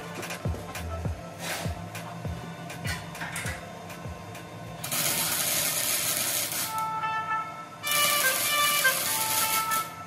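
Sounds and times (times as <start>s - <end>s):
background music: 0.0s - 4.4s
welder arc crackling and hissing: 0.0s - 7.0s, 7.8s - 10.0s.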